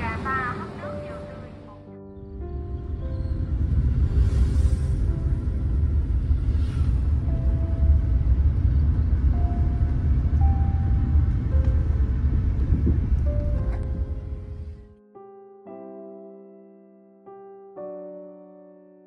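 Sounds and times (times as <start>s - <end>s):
soft music: 0.0s - 19.0s
car driving rumble: 2.8s - 14.8s.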